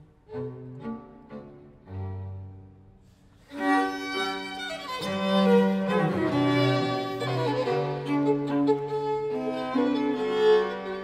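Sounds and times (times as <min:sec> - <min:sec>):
string quartet playing: 0:00.0 - 0:11.0.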